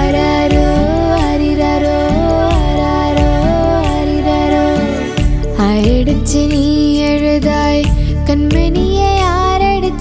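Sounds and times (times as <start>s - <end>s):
children's song with gliding melody: 0.0s - 10.0s.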